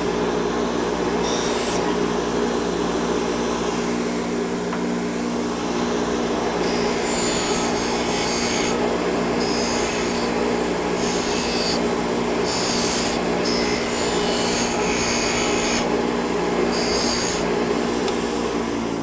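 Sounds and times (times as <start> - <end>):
bench grinder motor hum: 0.0 - 19.0
metal tube rasping on wire wheel: 6.6 - 8.8, 12.4 - 15.8.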